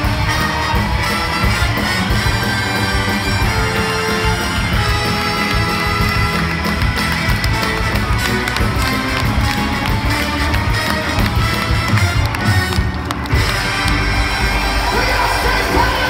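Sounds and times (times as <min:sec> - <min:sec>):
drums: 0:00.0 - 0:16.0
keyboards: 0:00.0 - 0:16.0.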